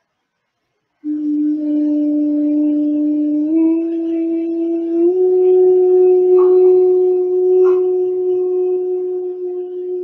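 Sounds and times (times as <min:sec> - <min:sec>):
woman humming: 0:01.0 - 0:10.0.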